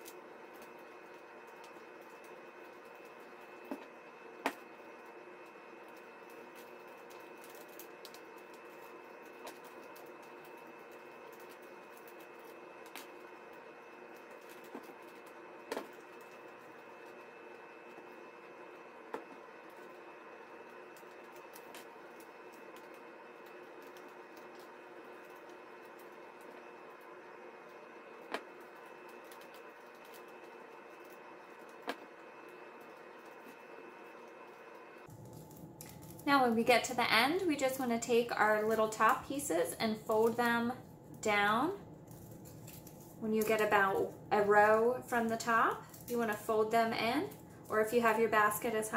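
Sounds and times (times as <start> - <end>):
faint room tone hum: 0.0 - 48.9.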